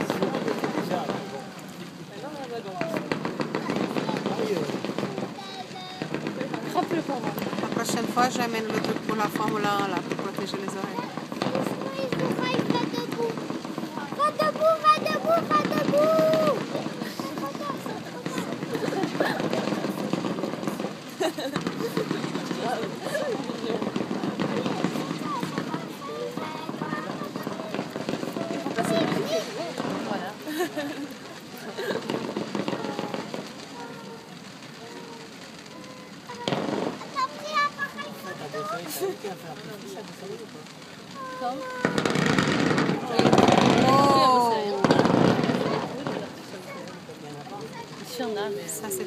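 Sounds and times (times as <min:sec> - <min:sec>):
fireworks bangs and crackling: 0:00.0 - 0:49.0
people talking: 0:00.0 - 0:49.0.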